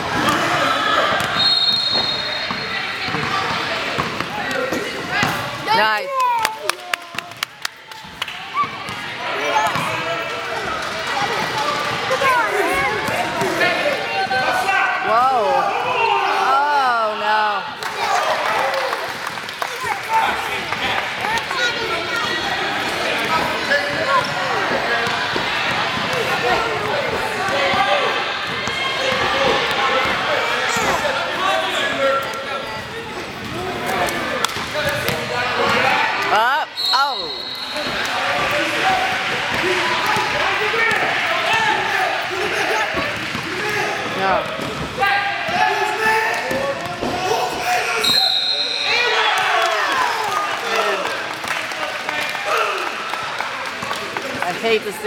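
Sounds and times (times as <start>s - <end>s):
spectators chattering and shouting: 0.0s - 55.0s
referee whistle blasts: 1.4s - 2.7s, 36.8s - 37.9s, 48.0s - 49.0s.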